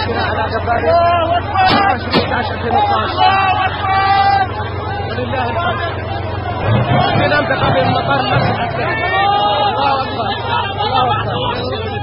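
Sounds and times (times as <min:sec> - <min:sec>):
engine droning: 0:00.0 - 0:12.0
men talking and calling out: 0:00.0 - 0:12.0.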